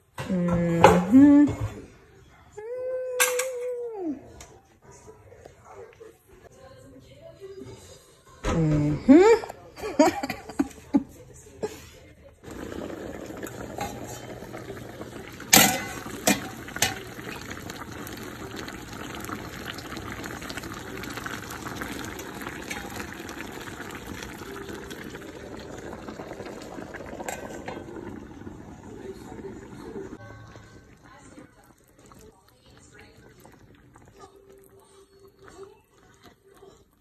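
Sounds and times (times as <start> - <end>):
broth bubbling in a pan: 12.4 - 37.0.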